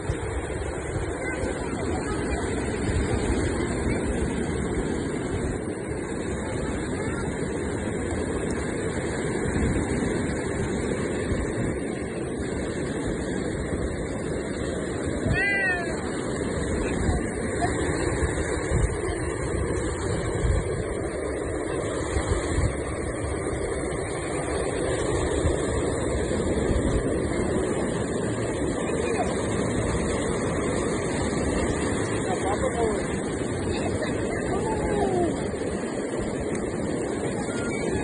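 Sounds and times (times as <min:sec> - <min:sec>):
surf breaking: 0:00.0 - 0:38.0
wind buffeting microphone: 0:00.0 - 0:38.0.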